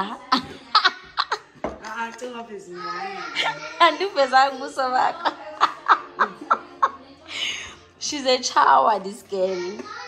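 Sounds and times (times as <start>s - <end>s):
woman laughing: 5.1s - 7.6s.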